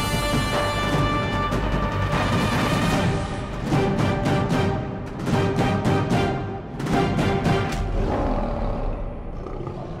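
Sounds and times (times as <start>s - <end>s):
lion roar: 7.8s - 10.0s.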